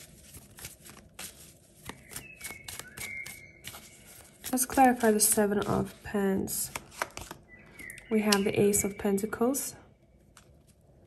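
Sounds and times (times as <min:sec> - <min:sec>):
cards shuffling: 0:00.0 - 0:07.4
faint high whistle-like tone: 0:01.9 - 0:04.3, 0:07.5 - 0:09.7.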